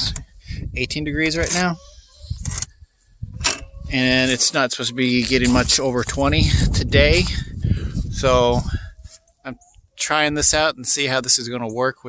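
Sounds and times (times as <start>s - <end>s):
man talking: 0.0s - 1.8s, 3.8s - 8.9s, 9.5s - 12.0s
breath: 7.6s - 8.1s.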